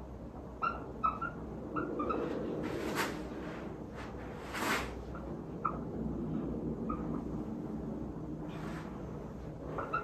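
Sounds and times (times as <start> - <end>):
marker squeaking on whiteboard: 0.6 - 3.2, 9.6 - 10.0.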